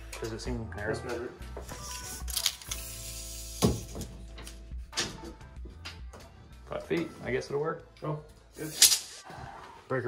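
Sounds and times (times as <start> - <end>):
background music: 0.0 - 10.0
tape measure clicking: 1.8 - 3.9, 8.6 - 9.2.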